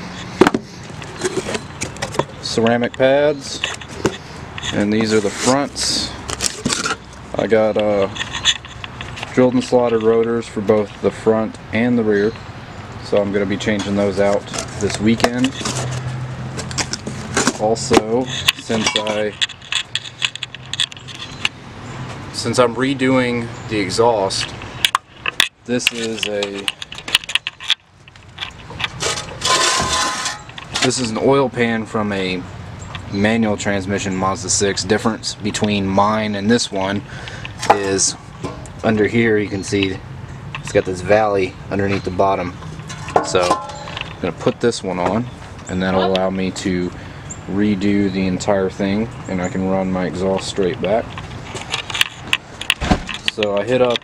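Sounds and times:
metal scraping: 0.0 - 11.0, 13.0 - 21.6, 23.2 - 31.7, 40.6 - 44.6
metal parts clinking: 18.2 - 21.5, 24.3 - 31.1, 42.8 - 44.2.

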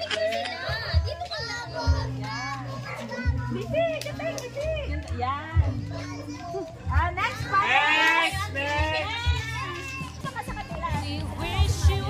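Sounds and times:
children chattering: 0.0 - 11.6
music with bass beat: 8.3 - 12.0.

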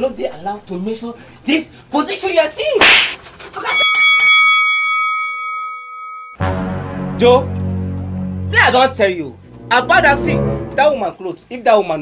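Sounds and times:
bell-like chime: 3.7 - 6.4.

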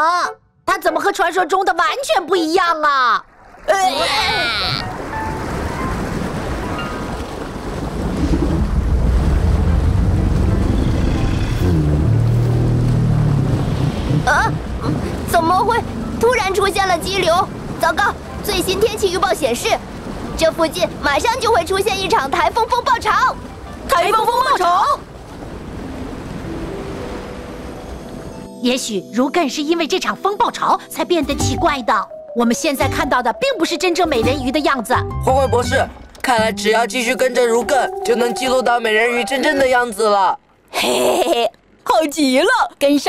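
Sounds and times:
underwater current rushing: 3.2 - 24.0.

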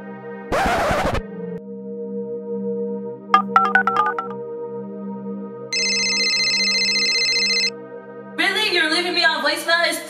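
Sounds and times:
electronic telephone ring: 5.8 - 7.7
phone keypad beeps: 5.8 - 7.7.

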